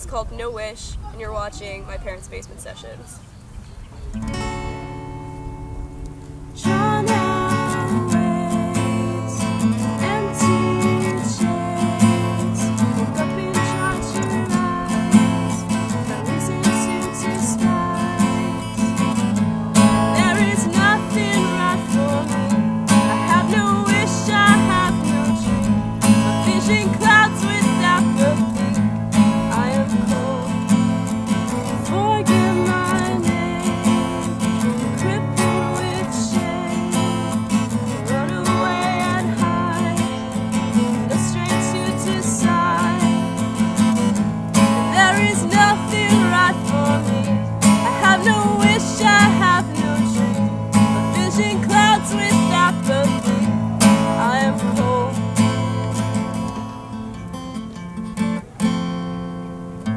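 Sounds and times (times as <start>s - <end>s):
acoustic guitar strumming: 4.0s - 59.9s
person singing: 6.5s - 56.6s.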